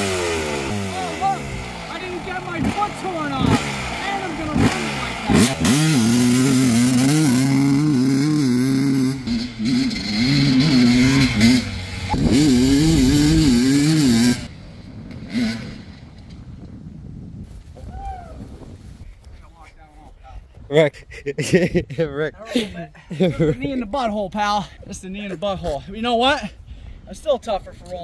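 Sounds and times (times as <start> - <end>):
motorcycle engine revving: 0.0 - 16.8.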